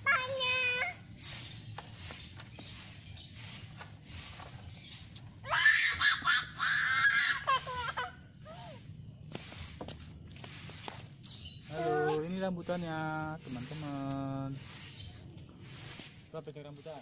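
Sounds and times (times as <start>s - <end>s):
person shrieking squeals: 5.4s - 7.6s
falling cries: 5.4s - 8.8s.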